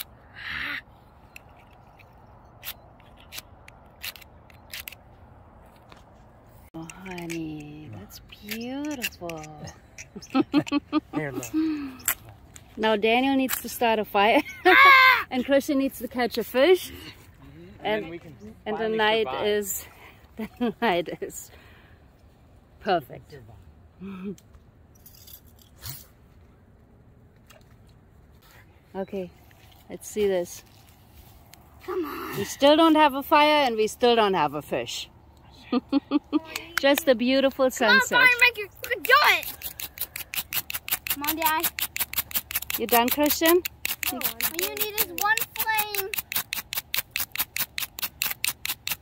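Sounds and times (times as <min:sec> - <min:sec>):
fire-starter rod scraped with striker: 0:01.4 - 0:05.0, 0:08.2 - 0:10.8, 0:38.4 - 0:49.0.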